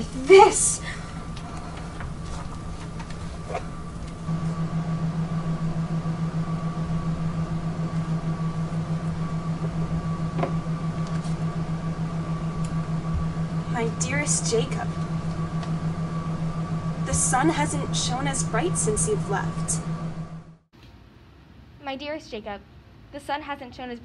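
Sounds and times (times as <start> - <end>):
pulsing mechanical hum: 0.0 - 20.7.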